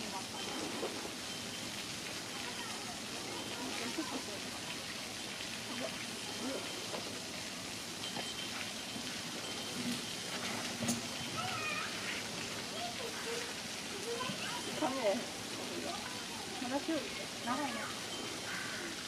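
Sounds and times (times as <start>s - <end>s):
distant people talking: 0.0s - 8.4s, 11.1s - 19.0s
steady background hiss: 0.0s - 19.0s.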